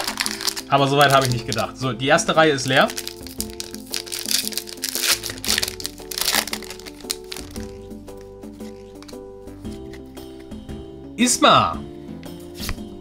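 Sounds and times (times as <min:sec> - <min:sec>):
foil wrapper crinkling and tearing: 0:00.0 - 0:01.8, 0:02.6 - 0:10.0
background music: 0:00.0 - 0:13.0.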